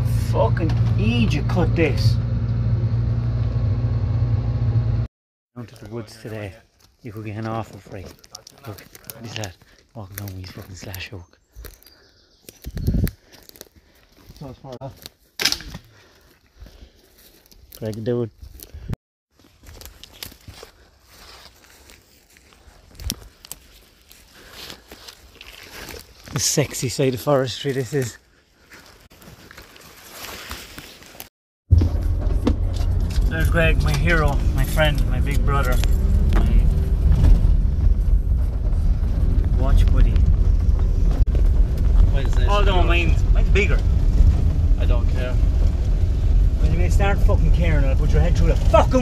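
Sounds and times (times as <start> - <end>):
diesel engine droning: 0.0 - 5.1, 31.7 - 49.0
footsteps through undergrowth: 5.6 - 31.3
twigs crackling and cracking: 5.6 - 31.3.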